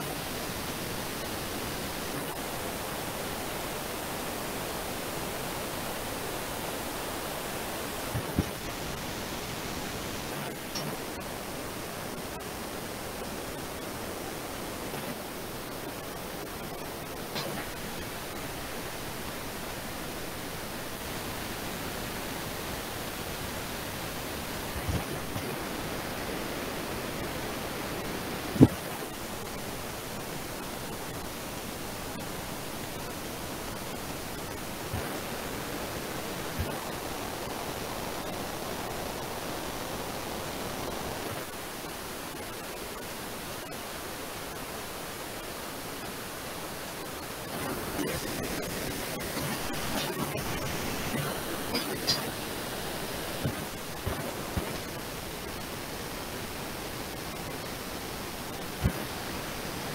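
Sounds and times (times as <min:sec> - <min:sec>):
microphone hiss: 0:00.0 - 0:59.9.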